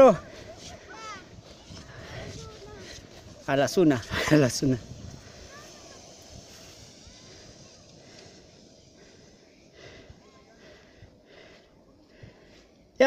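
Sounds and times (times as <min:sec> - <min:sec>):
low even rustle: 0:00.0 - 0:12.9.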